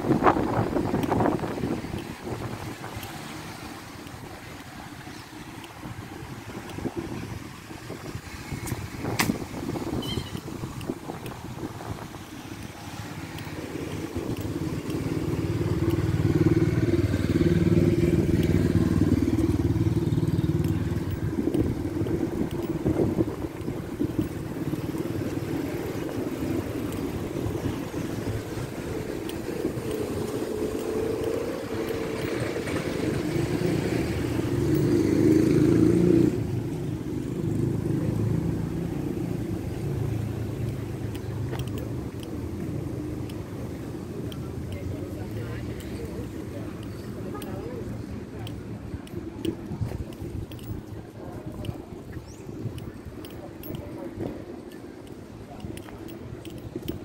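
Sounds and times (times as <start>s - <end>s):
car engines and tyres passing: 0.0s - 57.0s.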